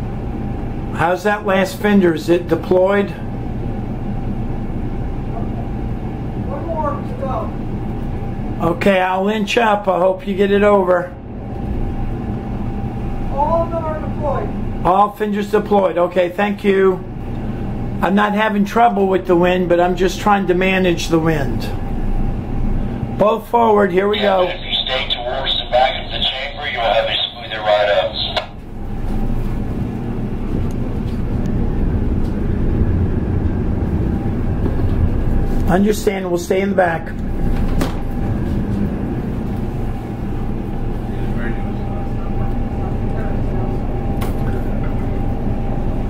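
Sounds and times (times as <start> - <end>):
boat engines low rumble: 0.0 - 46.0
faint constant hum: 0.0 - 46.0
diesel engines rumbling: 21.8 - 44.1.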